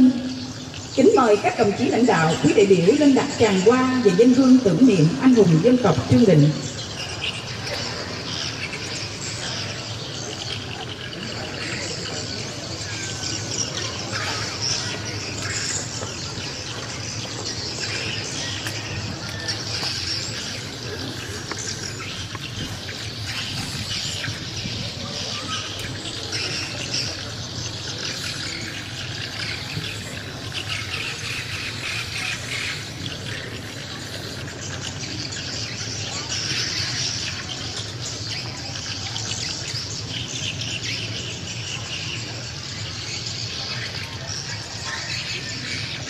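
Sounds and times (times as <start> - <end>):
murmur of crowd voices: 0.0 - 46.0
small birds chirping: 0.0 - 46.0.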